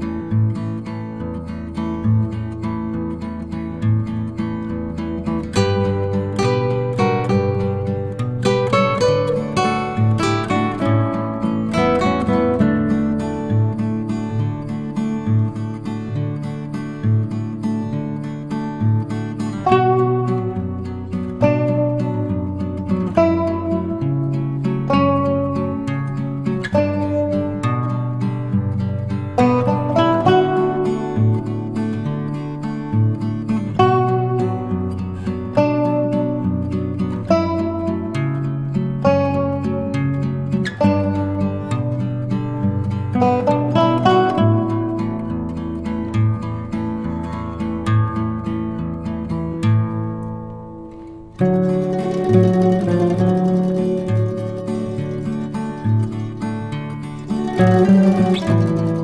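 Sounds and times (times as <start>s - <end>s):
plucked guitar-like notes: 0.0s - 59.0s.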